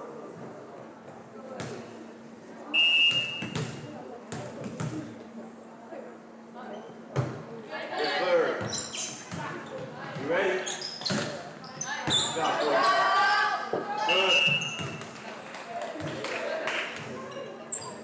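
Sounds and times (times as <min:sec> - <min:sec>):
players calling and shouting: 0:07.7 - 0:15.2.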